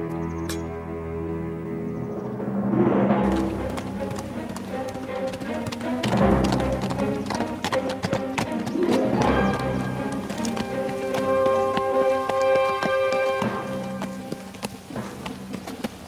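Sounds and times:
dramatic film score: 0:00.0 - 0:16.0
horse hoofbeats on dirt road: 0:03.2 - 0:16.0.

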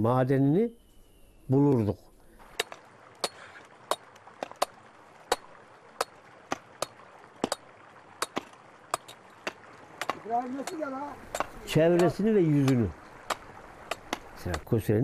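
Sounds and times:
pickaxes striking rock: 0:02.4 - 0:14.7.

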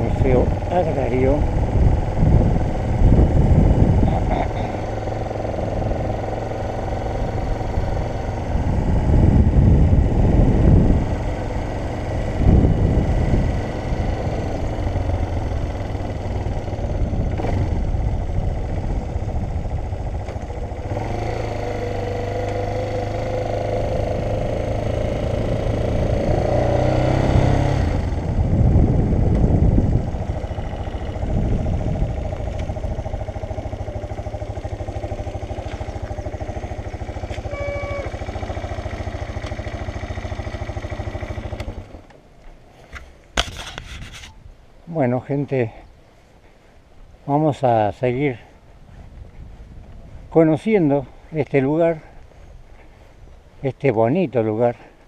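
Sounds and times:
wind rumble on microphone: 0:00.0 - 0:42.0, 0:42.8 - 0:55.0
motorcycle engine running: 0:00.0 - 0:44.4.

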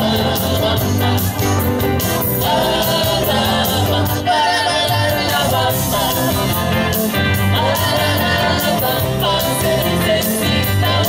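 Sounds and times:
band playing: 0:00.0 - 0:11.0
group singing in chorus: 0:00.0 - 0:11.0.

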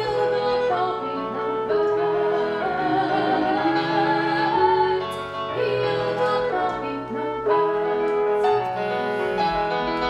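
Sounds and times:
woman singing: 0:00.0 - 0:08.1
clarinet: 0:00.0 - 0:10.0
piano: 0:00.0 - 0:10.0.

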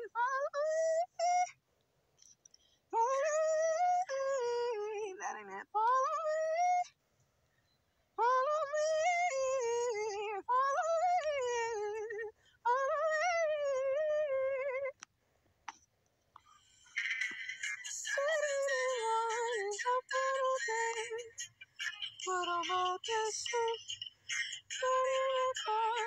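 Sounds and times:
faint clicks: 0:01.8 - 0:02.8
woman singing warm-up phrases: 0:03.0 - 0:06.9, 0:08.2 - 0:15.0, 0:17.9 - 0:26.0.

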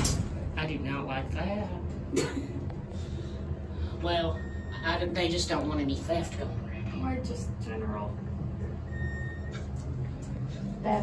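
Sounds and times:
elevator rumble: 0:00.0 - 0:11.0
electronic beep: 0:08.9 - 0:09.6.

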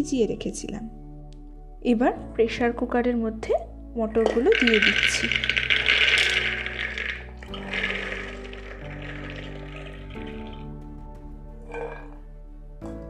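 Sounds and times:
background music with steady tones: 0:00.0 - 0:13.0
dried peas rattling on metal: 0:04.2 - 0:10.6.

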